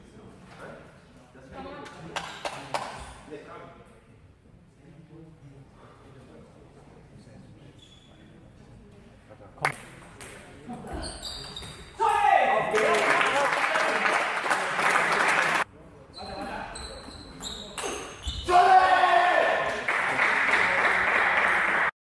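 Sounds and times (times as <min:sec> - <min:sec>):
loud drawn-out shout: 0:18.5 - 0:19.7.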